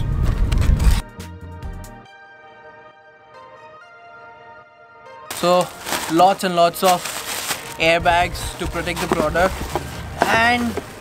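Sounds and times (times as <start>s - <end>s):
faint background music: 5.3s - 11.0s.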